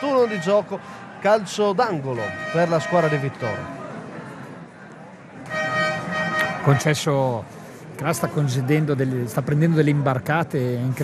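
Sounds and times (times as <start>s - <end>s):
held horn-like note: 5.5s - 7.0s.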